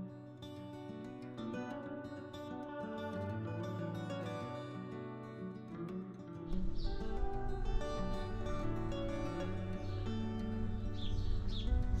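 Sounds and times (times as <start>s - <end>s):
acoustic guitar piece: 0.0s - 12.0s.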